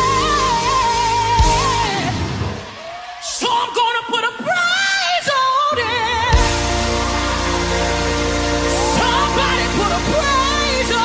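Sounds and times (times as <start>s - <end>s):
solo singer with vibrato: 0.0s - 2.4s, 3.3s - 6.7s, 8.7s - 11.0s
band sustained chord: 6.4s - 11.0s.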